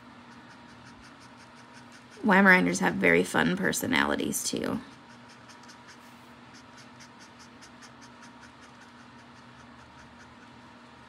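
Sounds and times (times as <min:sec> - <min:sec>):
marker scratching on paper: 0:00.3 - 0:02.4, 0:04.9 - 0:10.4.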